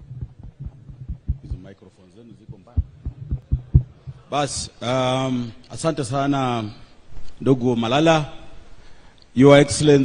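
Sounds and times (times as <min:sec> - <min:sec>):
microphone handling thumps: 0:00.0 - 0:01.7, 0:02.3 - 0:04.7.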